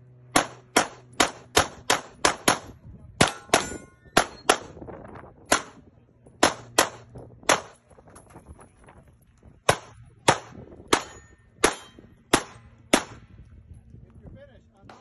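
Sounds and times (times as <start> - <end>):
pistol shots: 0.3 - 4.8, 5.5 - 5.8, 6.4 - 7.8, 9.6 - 13.2.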